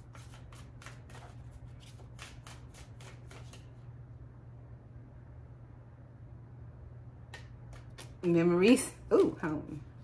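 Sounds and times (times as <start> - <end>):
cards being shuffled: 0.0 - 3.8.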